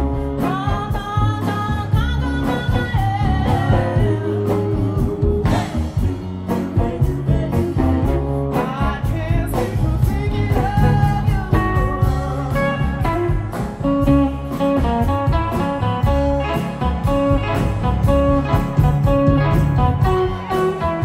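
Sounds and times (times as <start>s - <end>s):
bass guitar: 0.0s - 21.0s
drums: 0.0s - 21.0s
electric guitar: 0.0s - 21.0s.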